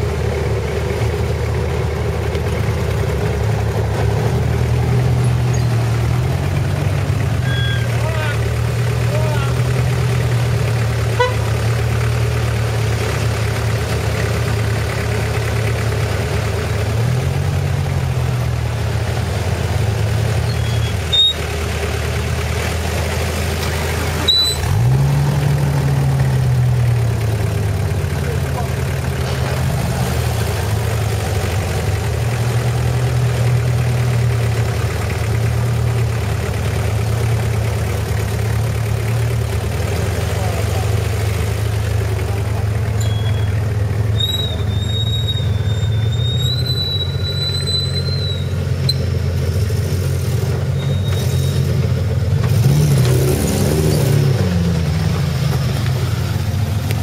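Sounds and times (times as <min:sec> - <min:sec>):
engine idling and revving: 0:00.0 - 0:57.0.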